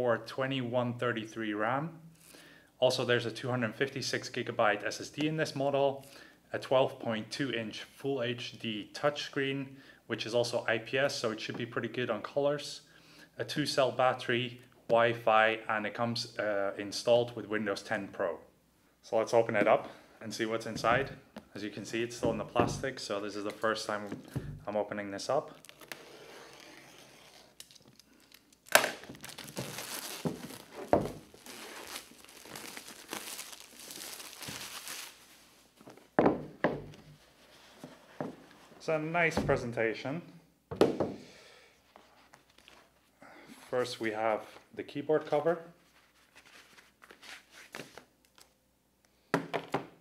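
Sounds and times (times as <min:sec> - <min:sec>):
plastic wrap crinkling and tearing: 0:25.4 - 0:35.9
plastic wrap snapping: 0:25.5 - 0:26.0, 0:27.5 - 0:35.4.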